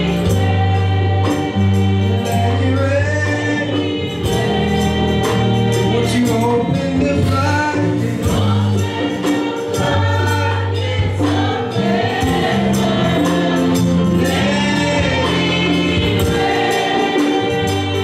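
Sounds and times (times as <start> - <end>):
backing singers: 0.0 - 18.0
drums and cymbals: 0.0 - 18.0
man leading singing: 2.2 - 4.0, 5.7 - 8.9, 14.1 - 16.4.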